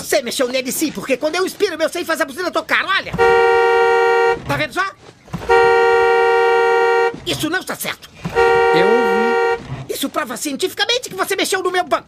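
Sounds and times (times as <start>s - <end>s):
two-note car horn blasts: 3.2s - 4.4s, 5.5s - 7.2s, 8.3s - 9.6s.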